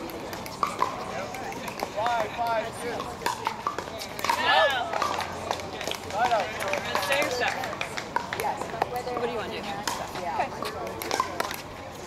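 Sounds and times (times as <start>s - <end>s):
paddles striking pickleballs: 0.0s - 12.0s
players talking and calling: 0.0s - 12.0s.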